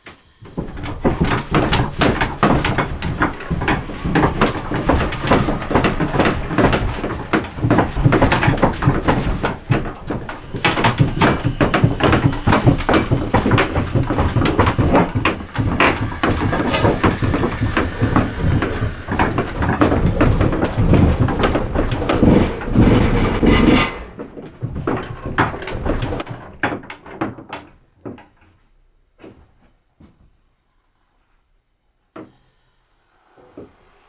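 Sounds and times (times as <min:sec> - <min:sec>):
knocking and clattering: 0:00.0 - 0:28.6.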